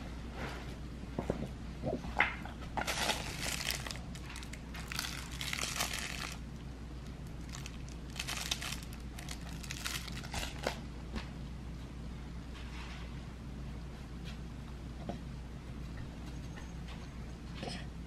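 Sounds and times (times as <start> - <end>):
crinkle toy crinkling: 2.8 - 10.8.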